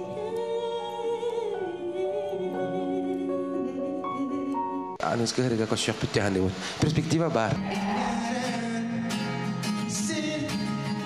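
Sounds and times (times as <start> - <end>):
man speaking into microphone: 5.0 - 7.7.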